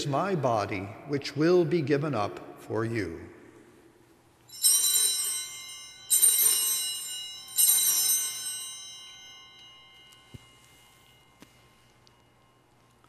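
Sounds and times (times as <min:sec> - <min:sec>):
altar bells ringing: 0:04.3 - 0:13.0.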